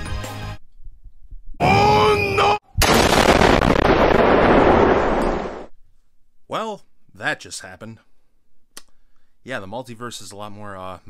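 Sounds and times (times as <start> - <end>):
person shouting: 1.6 - 2.6
large explosion rumbling: 2.8 - 5.7.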